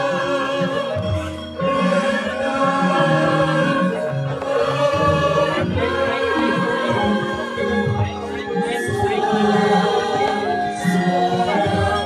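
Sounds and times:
gamelan ensemble playing: 0.0s - 12.0s
group of voices singing: 0.0s - 12.0s.

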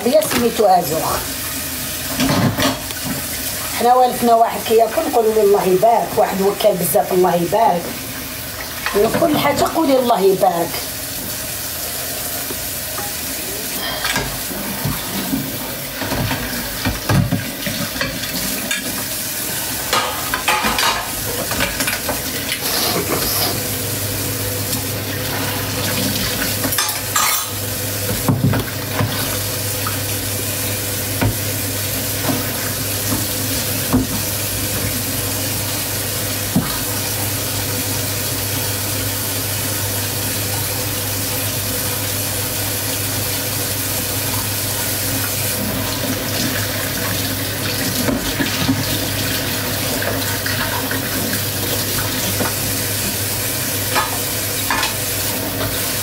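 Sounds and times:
tap water running into sink: 0.0s - 56.0s
dishes and cutlery clinking: 26.7s - 27.6s.

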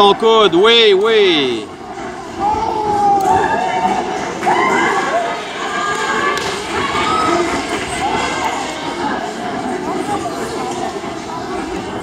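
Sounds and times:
crowd murmur in a hall: 0.0s - 12.0s.

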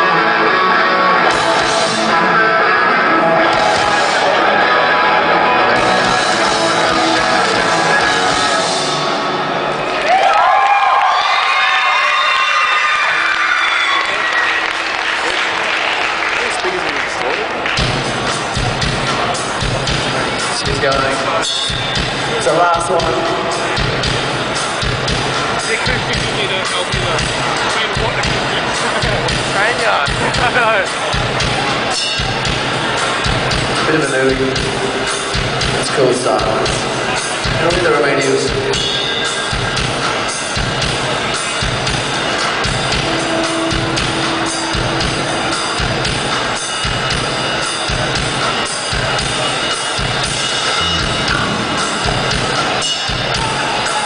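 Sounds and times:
electric guitars: 0.0s - 10.5s, 12.7s - 54.0s
crowd noise: 0.0s - 54.0s
drum kit: 1.2s - 2.4s, 3.4s - 9.3s, 17.6s - 54.0s.

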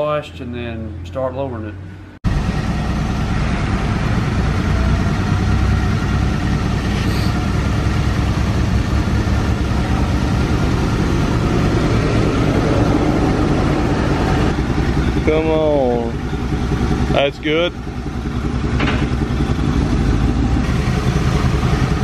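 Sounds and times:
pickup engine idling: 2.3s - 22.0s.

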